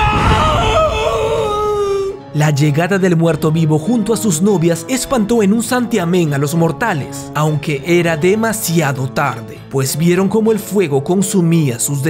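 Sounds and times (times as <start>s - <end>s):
low rumble: 0.0s - 2.1s
person crying out wailing: 0.0s - 2.2s.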